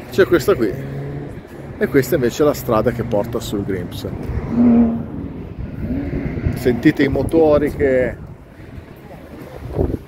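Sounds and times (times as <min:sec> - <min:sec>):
vehicle engine passing: 0:00.1 - 0:08.1.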